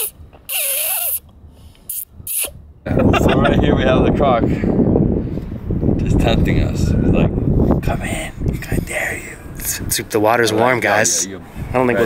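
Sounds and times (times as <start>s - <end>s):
person laughing: 2.8s - 3.6s.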